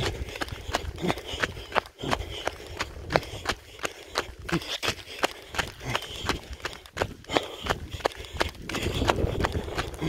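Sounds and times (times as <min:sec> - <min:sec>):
wind rumbling on microphone: 0:00.0 - 0:04.6, 0:05.5 - 0:10.0
running footsteps in sandals on dirt: 0:00.0 - 0:10.0.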